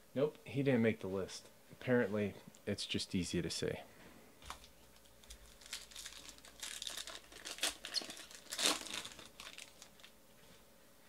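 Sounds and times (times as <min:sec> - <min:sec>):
plastic foil wrapper tearing and crinkling: 0:04.5 - 0:10.2.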